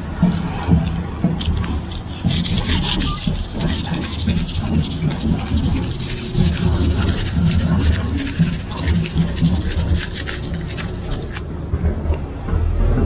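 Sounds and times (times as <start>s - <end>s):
paper rubbing against metal: 1.4s - 11.4s.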